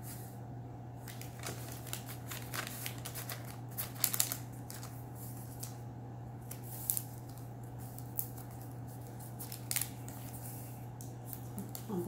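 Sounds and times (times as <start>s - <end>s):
steady low hum: 0.0s - 12.0s
paper pages rustling: 1.0s - 5.8s, 6.4s - 11.9s.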